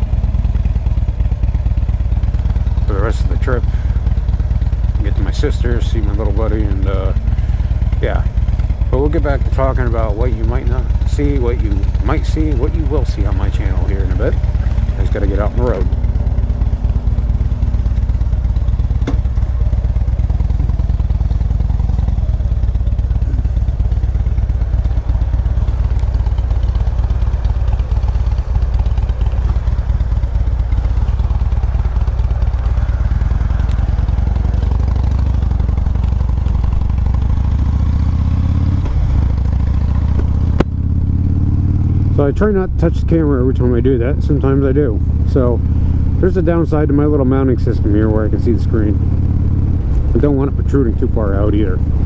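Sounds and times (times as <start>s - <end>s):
motorcycle engine pulling away: 0.0s - 52.0s.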